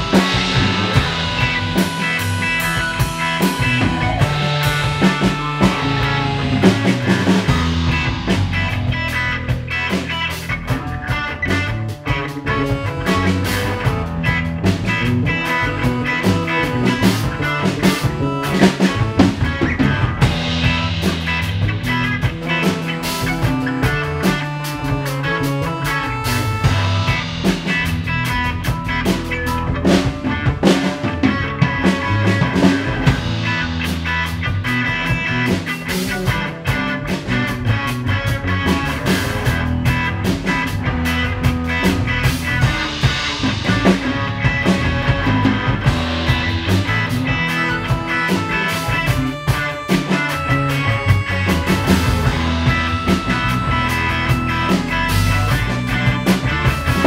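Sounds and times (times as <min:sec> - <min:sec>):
bass line: 0:00.0 - 0:57.0
drum kit beat: 0:00.0 - 0:57.0
electric guitar: 0:00.0 - 0:57.0.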